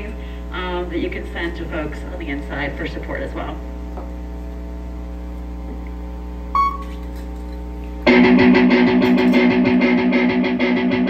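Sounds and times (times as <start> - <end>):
electrical mains hum: 0.0 - 11.0
short high beep: 6.5 - 6.9.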